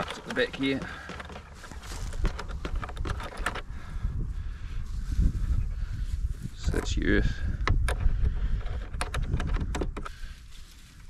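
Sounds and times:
hands handling plastic device: 0.0s - 3.7s, 6.6s - 10.3s
wind rumble on microphone: 1.6s - 11.0s.

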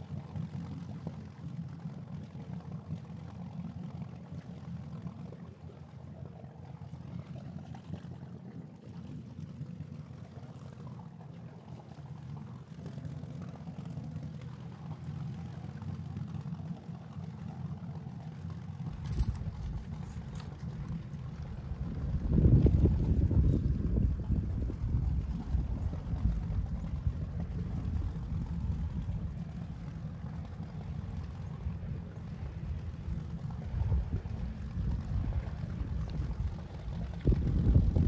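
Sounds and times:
wind buffeting microphone: 18.9s - 38.0s.

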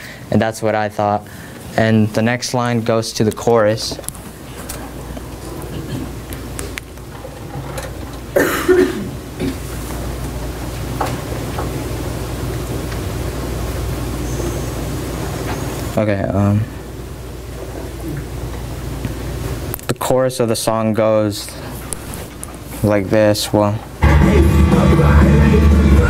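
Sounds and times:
person coughing: 5.7s - 6.2s, 8.4s - 9.6s
low hum: 24.0s - 26.0s.

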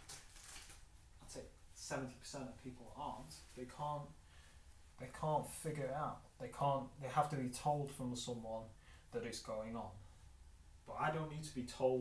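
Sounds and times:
man talking: 1.2s - 4.2s, 4.9s - 10.0s, 10.8s - 12.0s.

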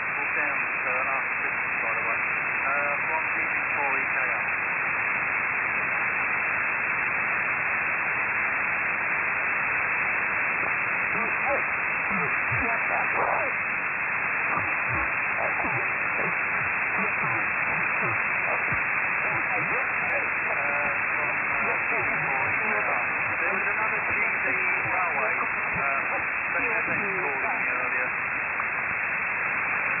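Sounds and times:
faint voices in radio noise: 0.0s - 5.1s, 5.7s - 30.0s
radio receiver hiss: 0.0s - 30.0s.

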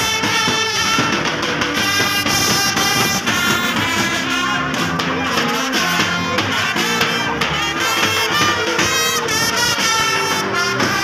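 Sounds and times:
band music with guitar drums horns: 0.0s - 11.0s.

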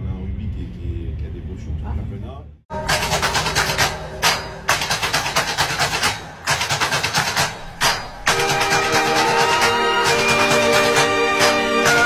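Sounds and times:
fast percussive beat music: 2.7s - 12.0s.

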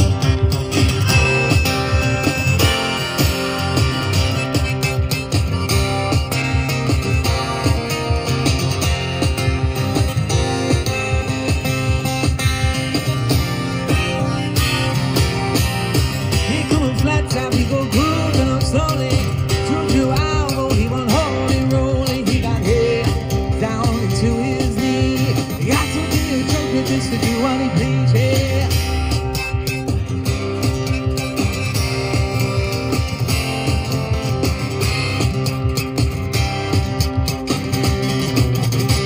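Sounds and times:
acoustic guitar strummed and picked: 0.0s - 39.0s
man singing: 16.4s - 29.3s.

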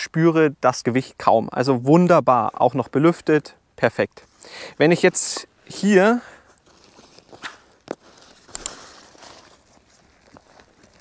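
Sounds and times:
nylon fabric rustling: 6.6s - 11.0s.

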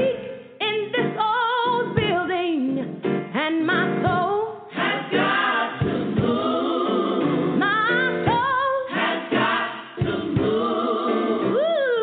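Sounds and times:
gospel choir singing: 4.7s - 11.8s.

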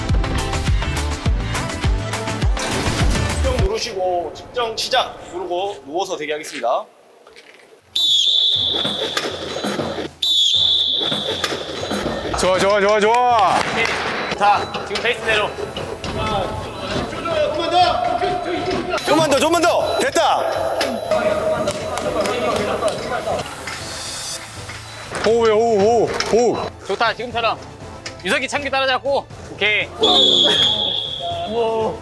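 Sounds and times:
referee whistle blasts: 8.0s - 9.4s, 10.2s - 12.0s, 30.0s - 31.6s.

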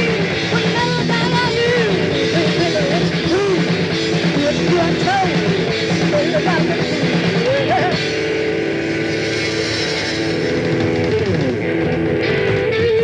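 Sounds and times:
electric guitar lead: 0.0s - 13.0s
live rock band playing: 0.0s - 13.0s.

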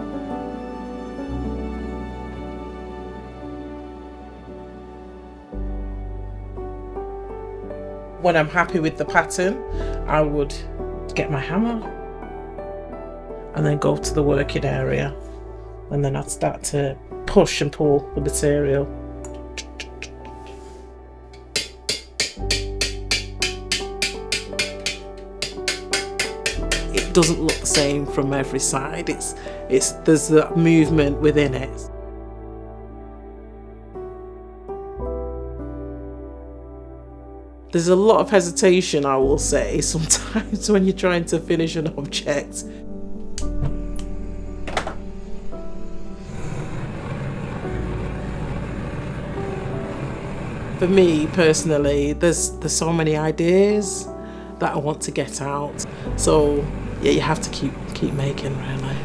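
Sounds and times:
background music: 0.0s - 59.0s
hammer striking metal vessel: 21.4s - 28.1s
gas torch flame roaring: 46.1s - 51.4s.

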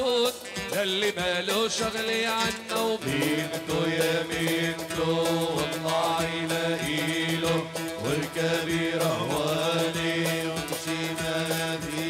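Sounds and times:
regular drum beat: 0.0s - 12.0s
wedding music over loudspeakers: 0.0s - 12.0s.

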